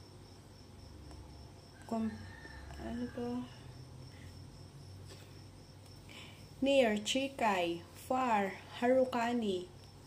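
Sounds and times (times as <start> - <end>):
cricket trill: 0.0 - 10.0.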